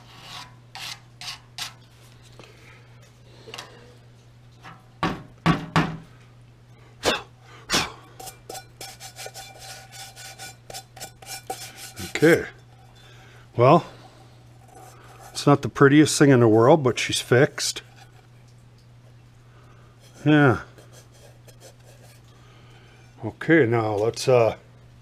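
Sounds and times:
hands scraping metal pot and tray: 0.0 - 1.8, 8.2 - 13.2, 14.5 - 16.2, 17.0 - 18.4, 20.0 - 22.4
knocks on metal: 5.0 - 6.0.

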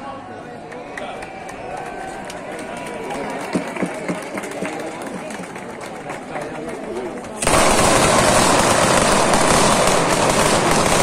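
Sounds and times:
crowd chattering: 0.0 - 11.0
distant firecrackers cracking: 7.4 - 11.0.

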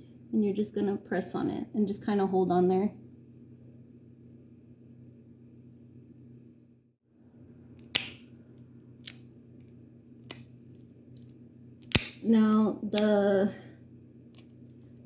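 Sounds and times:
faint room hum: 0.0 - 15.0
nail clipper snipping: 11.8 - 12.2.

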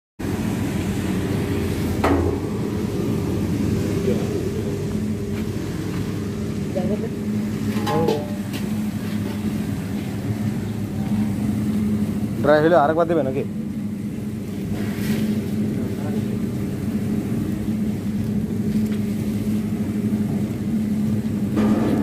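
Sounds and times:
roasting machine humming: 0.2 - 22.0
sharp knock: 7.8 - 8.5.

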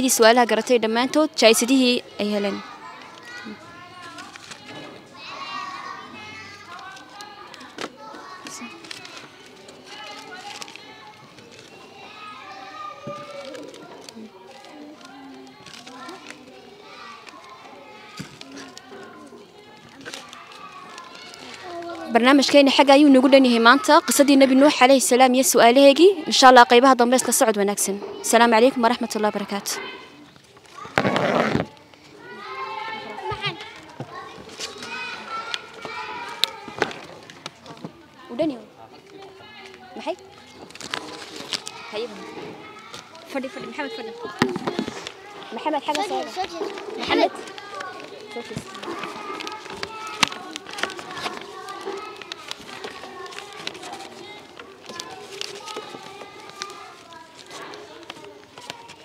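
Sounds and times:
young children chattering: 0.0 - 59.0.

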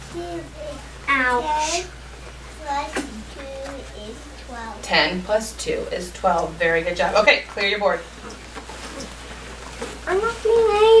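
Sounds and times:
children murmuring: 0.0 - 4.9, 8.7 - 11.0.

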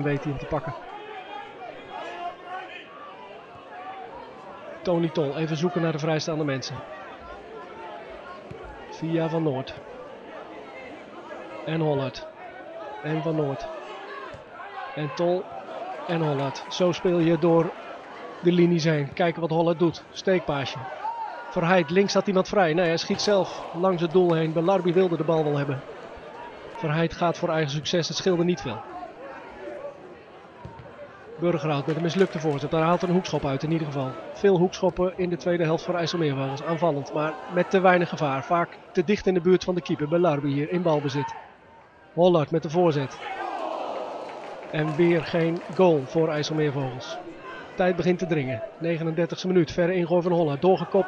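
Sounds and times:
faint chatter of spectators: 0.0 - 42.2, 42.8 - 51.0.

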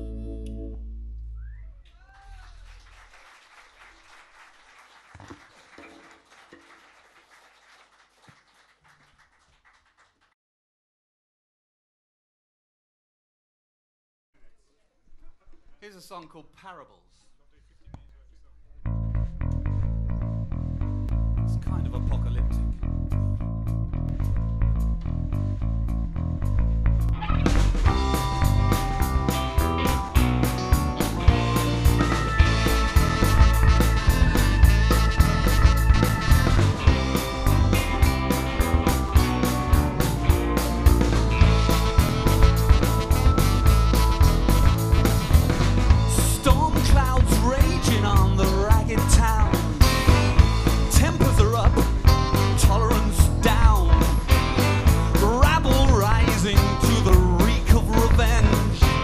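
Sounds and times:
bass guitar: 0.0 - 1.8, 18.8 - 59.0
audience clapping: 1.8 - 10.4
electric guitar: 26.4 - 59.0
full rock band playing: 27.2 - 59.0.

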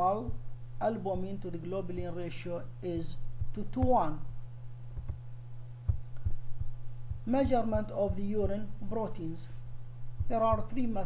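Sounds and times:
low electrical hum: 0.0 - 11.0
soft low thumps: 2.9 - 11.0.

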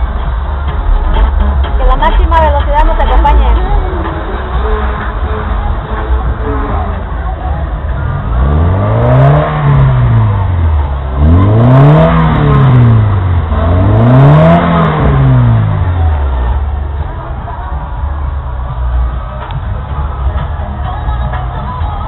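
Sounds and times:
car engine revving: 0.0 - 22.0.

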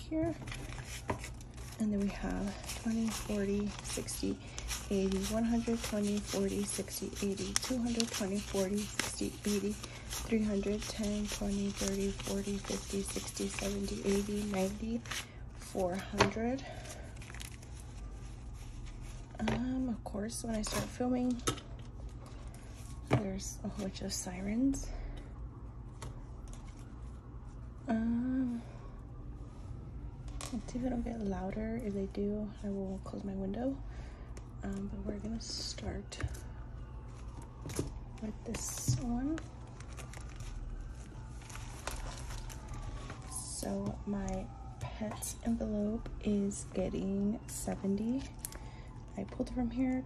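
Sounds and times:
low room hum: 0.0 - 50.0
paper rustling: 0.3 - 19.3, 38.5 - 43.3
paper crinkles: 0.3 - 19.4, 38.5 - 43.6.

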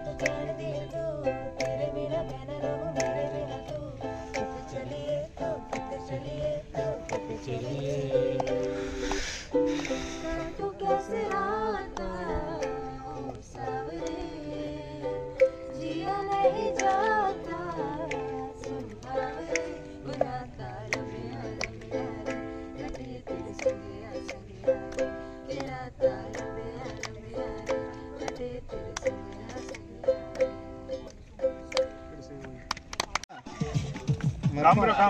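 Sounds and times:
ukulele strumming chords: 0.0 - 32.6.

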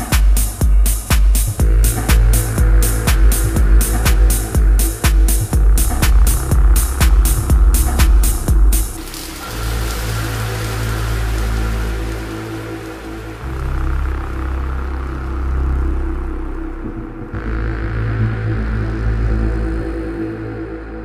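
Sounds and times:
hiss: 0.0 - 13.6
techno beat: 0.0 - 19.0
deep bass notes: 0.0 - 21.0.

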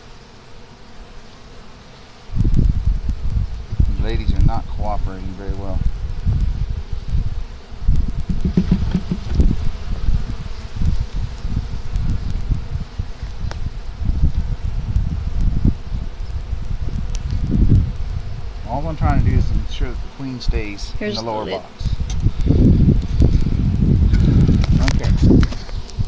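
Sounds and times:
honeybees humming: 0.0 - 26.0
wind buffeting microphone: 2.3 - 21.0, 21.6 - 26.0.

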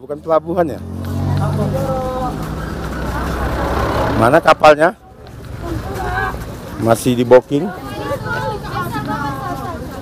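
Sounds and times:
vehicle engine rumbling: 0.0 - 10.0
crowd voices: 0.8 - 10.0.

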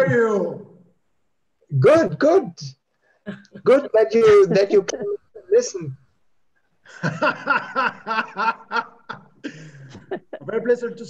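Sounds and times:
man laughing: 3.4 - 5.6, 6.9 - 10.7.

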